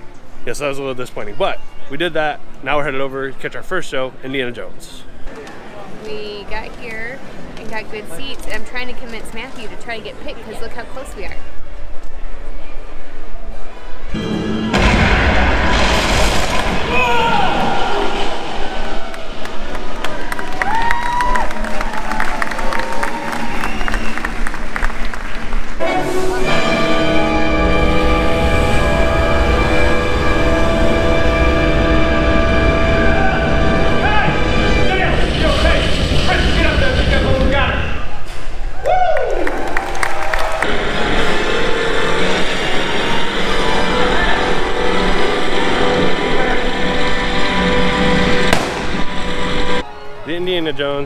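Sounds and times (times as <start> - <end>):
orchestral music: 14.1 - 20.7, 25.7 - 36.8, 40.7 - 50.7.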